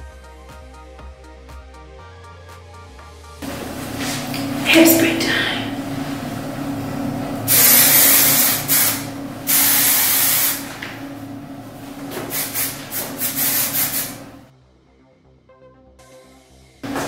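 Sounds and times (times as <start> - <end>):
hairspray can spraying: 7.5 - 10.9, 12.1 - 14.3.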